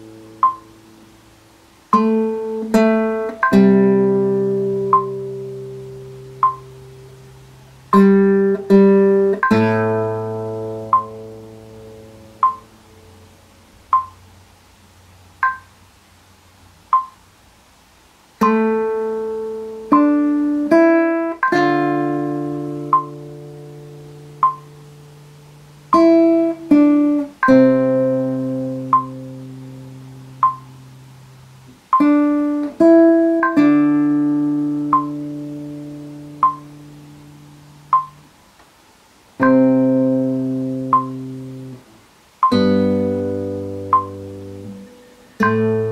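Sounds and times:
metronome clicks: 0.3s - 0.9s, 1.9s - 12.8s, 13.9s - 14.3s, 15.4s - 15.8s, 16.9s - 17.2s, 18.4s - 25.2s, 25.9s - 31.0s, 31.7s - 38.7s, 39.4s - 45.9s
classical guitar chord ringing: 1.9s - 7.3s, 7.9s - 13.2s, 18.4s - 31.0s, 32.0s - 38.3s, 39.4s - 45.9s.

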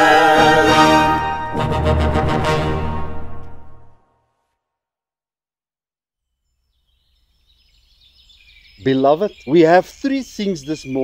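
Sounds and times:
birds chirping: 6.4s - 11.0s
man speaking: 8.8s - 11.0s.

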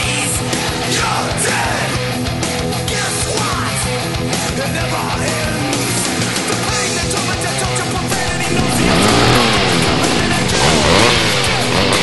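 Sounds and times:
loud heavy rock music: 0.0s - 12.0s.

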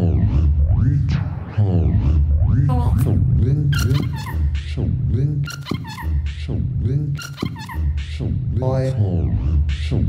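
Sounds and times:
low pulsing bass: 0.0s - 7.2s, 7.8s - 10.0s
swooping electronic tones: 0.0s - 8.4s.

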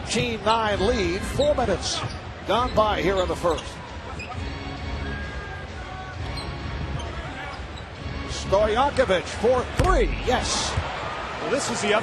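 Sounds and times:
faint arena music: 0.0s - 12.0s.

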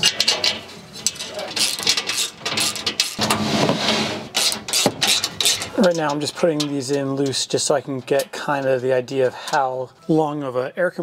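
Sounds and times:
metal bolts clinking and rattling: 0.0s - 3.3s, 4.3s - 9.8s
rattling metal scrapes: 0.0s - 10.1s.

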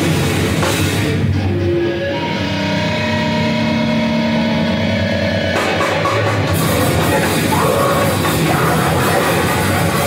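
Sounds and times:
distorted guitar feedback drone: 0.0s - 10.0s
heavy metal band playing: 0.0s - 10.0s.

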